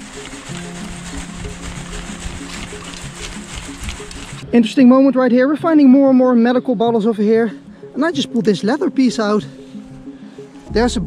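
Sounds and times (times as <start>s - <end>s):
steady ticking beat: 0.0s - 4.4s
held low music note: 10.7s - 11.0s.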